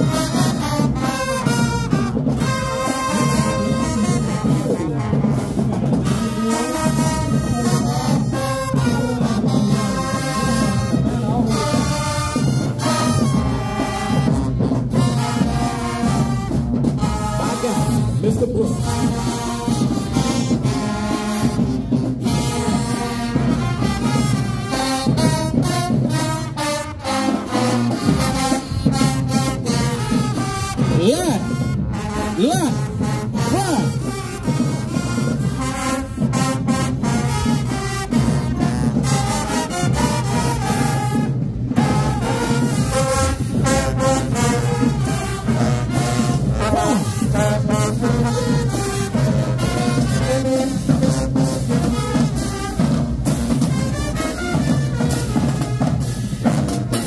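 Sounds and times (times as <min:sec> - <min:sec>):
brass chords: 0:00.0 - 0:57.0
marching band playing: 0:00.0 - 0:57.0
steady drum beat: 0:00.0 - 0:57.0.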